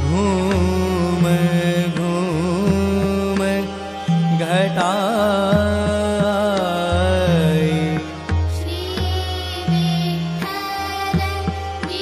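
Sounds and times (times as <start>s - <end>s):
devotional melody with ornaments: 0.0s - 12.0s.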